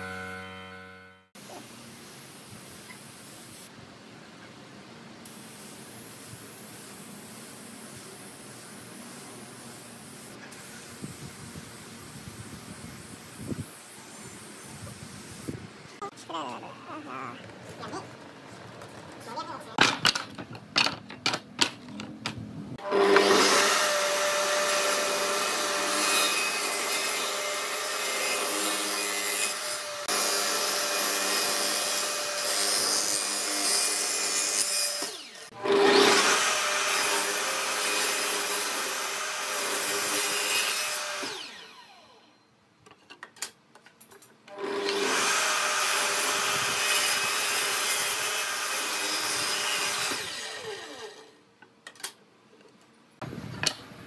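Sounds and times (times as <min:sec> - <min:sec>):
table saw cutting wood: 0:00.0 - 0:01.3, 0:22.8 - 0:42.0, 0:44.5 - 0:51.4
wooden knocks: 0:19.8 - 0:22.4.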